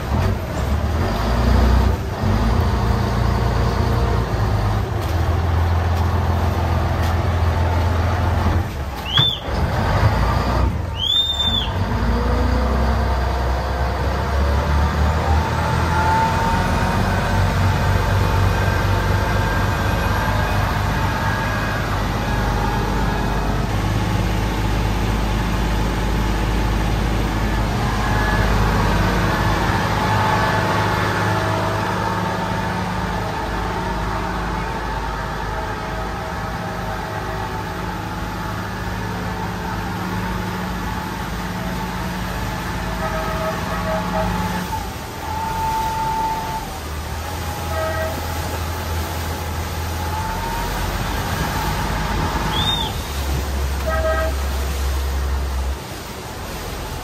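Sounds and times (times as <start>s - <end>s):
boat engine droning: 0.0s - 57.0s.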